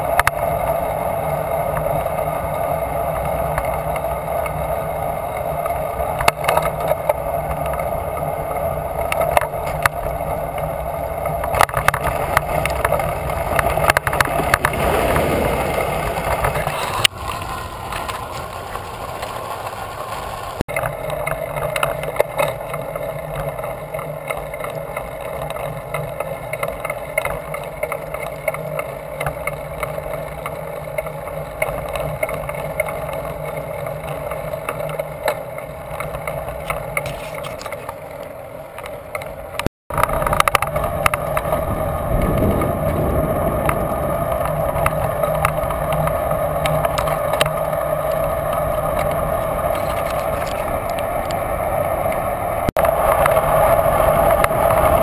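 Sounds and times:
wind noise: 0.0s - 20.6s, 39.5s - 55.0s
bicycle road noise: 0.0s - 55.0s
whoosh falling in pitch: 14.2s - 17.7s
small clicks and rattles: 44.4s - 51.5s.

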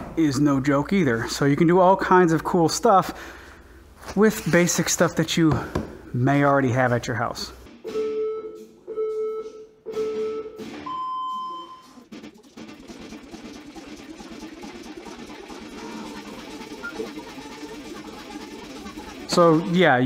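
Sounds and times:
countdown beeps: 7.9s - 12.0s.

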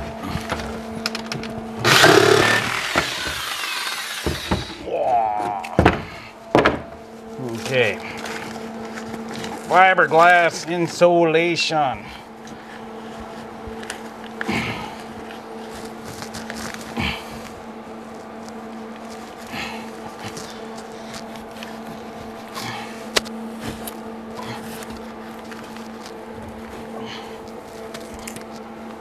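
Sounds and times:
steady low hum: 0.0s - 29.0s
rustling and scratching: 15.0s - 22.6s.

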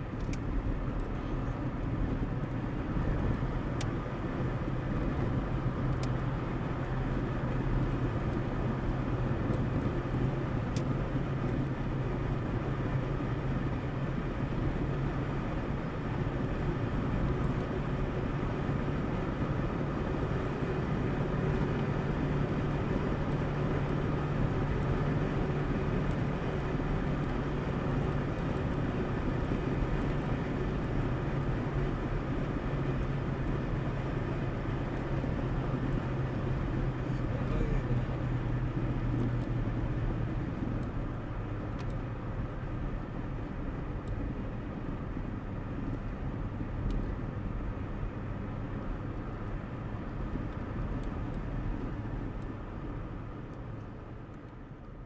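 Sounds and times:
car engine hum: 0.0s - 55.0s
tyres rumbling on asphalt: 0.0s - 55.0s.

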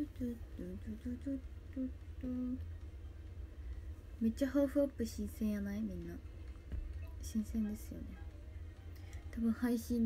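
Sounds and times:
woman humming a tune: 0.0s - 2.7s.

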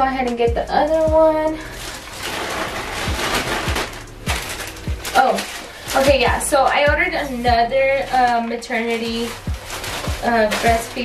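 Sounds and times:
music with bass drum beat: 0.0s - 11.0s
plastic bag rustling: 0.7s - 11.0s.

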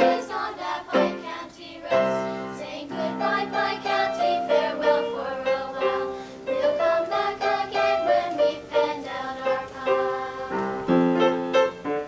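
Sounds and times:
children's choir singing: 0.0s - 11.7s.

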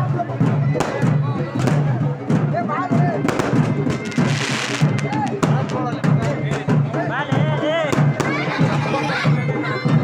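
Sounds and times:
fireworks popping: 3.2s - 6.0s.

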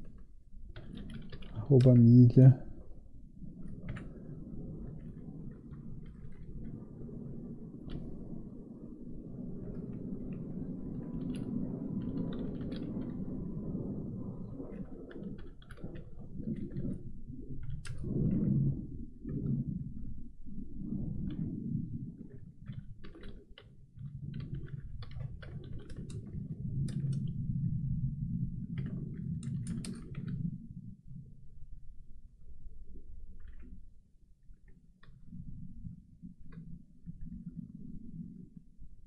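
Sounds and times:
steady low hum: 11.5s - 39.0s.

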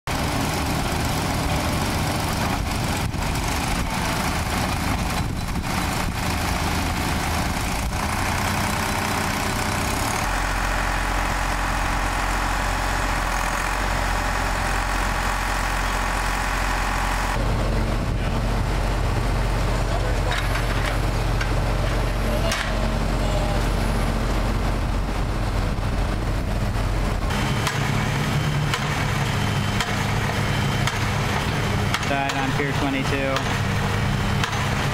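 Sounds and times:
diesel engine of drilling rig: 0.1s - 34.9s.

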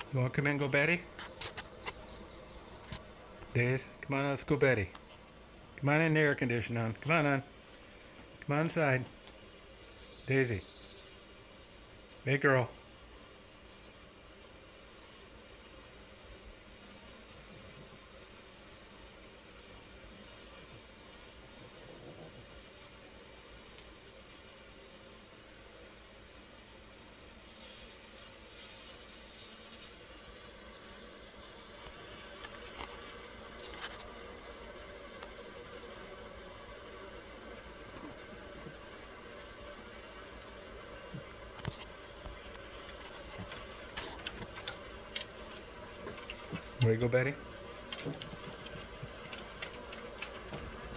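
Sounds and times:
honeybees buzzing: 0.0s - 50.9s.

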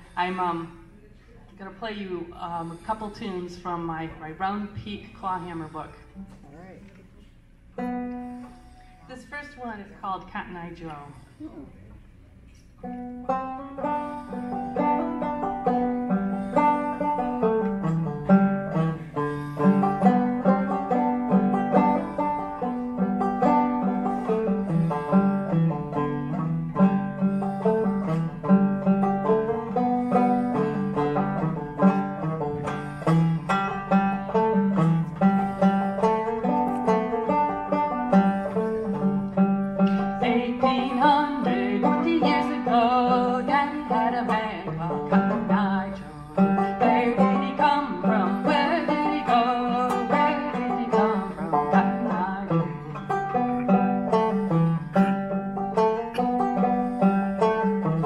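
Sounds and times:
solo banjo playing: 7.8s - 8.4s, 12.8s - 58.0s.

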